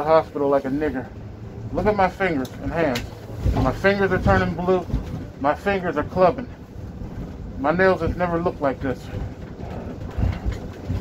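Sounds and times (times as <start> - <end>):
low vehicle rumble: 0.0 - 11.0
thumps and rattles: 1.8 - 11.0.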